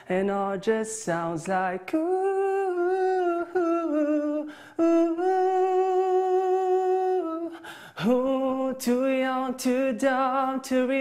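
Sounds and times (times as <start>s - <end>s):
man breathing in: 4.4s - 4.8s, 7.5s - 8.0s.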